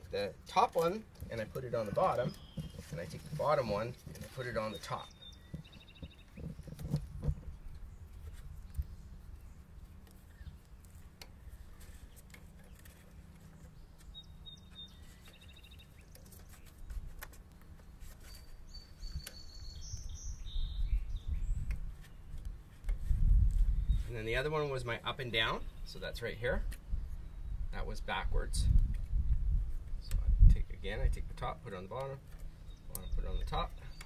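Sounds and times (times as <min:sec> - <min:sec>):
birds chirping: 0:00.0 - 0:28.5, 0:29.1 - 0:34.0.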